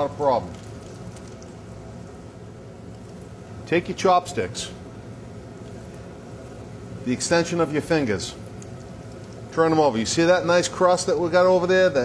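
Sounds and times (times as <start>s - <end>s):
oil crackles: 0.0s - 3.8s, 5.4s - 11.5s
donuts sizzling in deep fryer: 0.0s - 12.0s.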